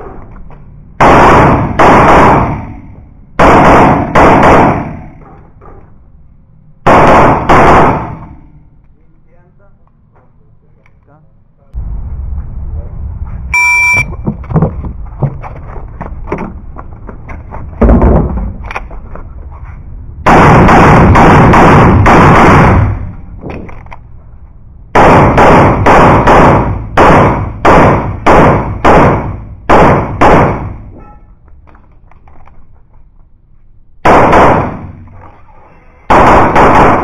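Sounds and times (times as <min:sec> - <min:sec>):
pistol shots: 0:01.0 - 0:05.2, 0:06.8 - 0:08.5, 0:20.2 - 0:23.1, 0:25.0 - 0:30.9, 0:34.0 - 0:35.1, 0:36.1 - 0:37.0
shot timer beep: 0:13.5 - 0:14.2.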